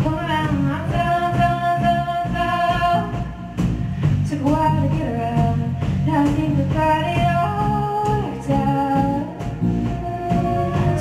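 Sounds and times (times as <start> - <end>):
drums: 0.0 - 11.0
steady bass line: 0.0 - 11.0
held melody notes: 8.5 - 11.0.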